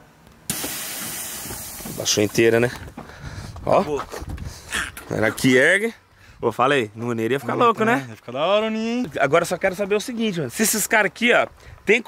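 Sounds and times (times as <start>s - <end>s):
air suspension hissing: 0.5s - 3.6s.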